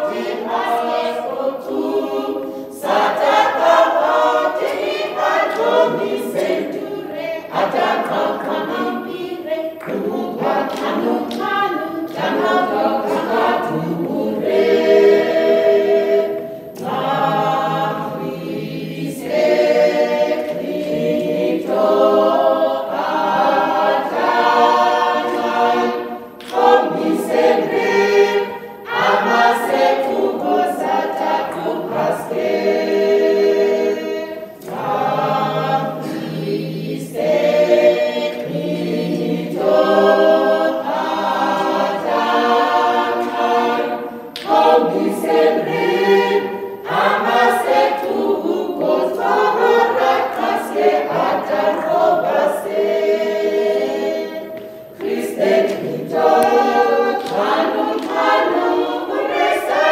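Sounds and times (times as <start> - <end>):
choir singing a cappella: 0.0 - 59.9.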